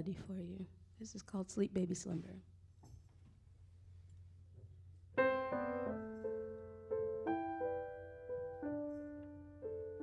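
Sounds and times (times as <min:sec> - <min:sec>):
slow grand piano: 0:04.5 - 0:10.0.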